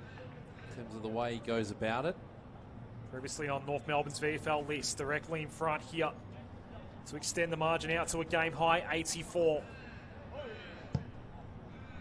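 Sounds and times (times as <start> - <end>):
faint ground ambience: 0.0 - 12.0.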